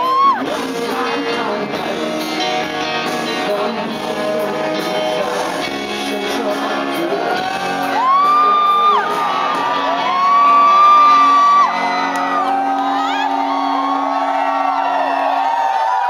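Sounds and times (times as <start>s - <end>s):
audience whooping and cheering: 0.0s - 0.6s, 7.0s - 16.0s.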